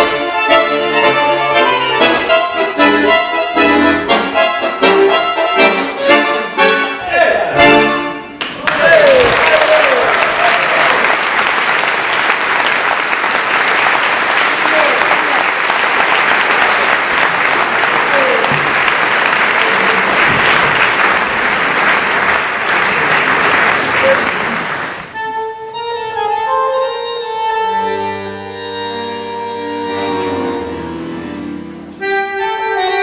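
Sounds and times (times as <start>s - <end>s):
audience applauding: 8.4s - 25.2s.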